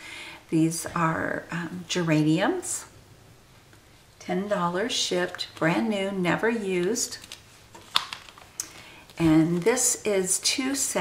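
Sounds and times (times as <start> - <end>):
plastic packets clicking and crackling: 7.0 - 9.2.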